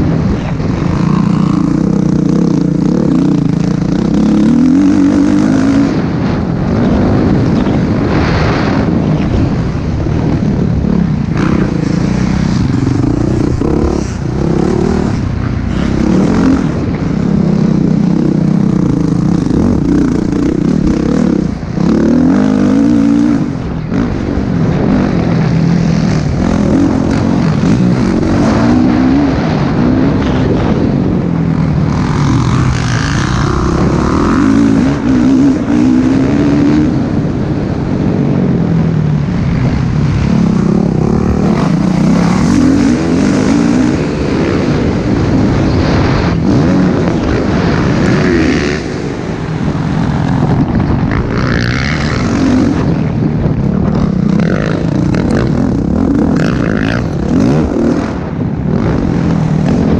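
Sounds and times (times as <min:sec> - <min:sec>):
motocross bike engine revving: 0:00.0 - 0:59.9.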